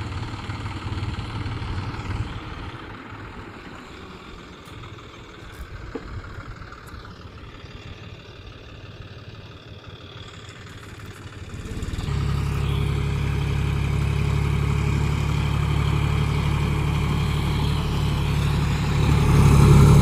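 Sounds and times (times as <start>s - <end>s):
tractor diesel engine rumbling: 0.0s - 20.0s.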